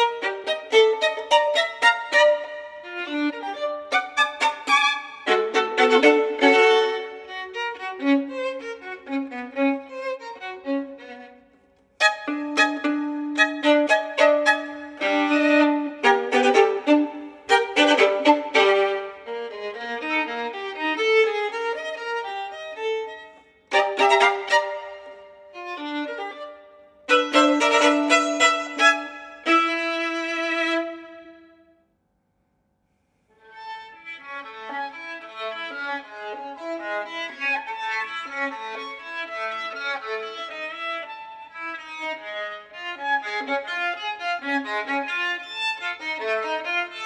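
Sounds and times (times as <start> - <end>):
solo violin bowed: 0.0 - 31.8, 33.3 - 47.0.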